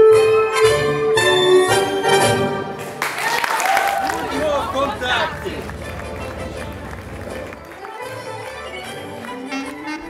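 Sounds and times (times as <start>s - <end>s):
music: 0.0s - 10.0s
voices: 3.6s - 7.6s
low background hum: 3.7s - 7.8s.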